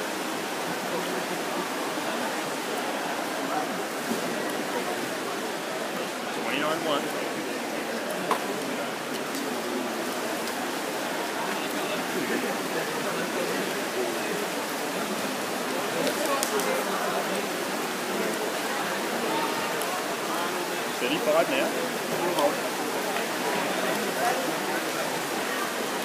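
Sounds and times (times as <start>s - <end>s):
echoing crowd voices: 0.0s - 26.0s.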